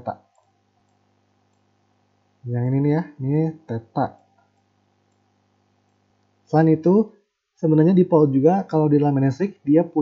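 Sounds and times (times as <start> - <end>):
person speaking: 0.0 - 0.3, 2.4 - 4.4, 6.5 - 10.0
faint click: 4.2 - 6.4.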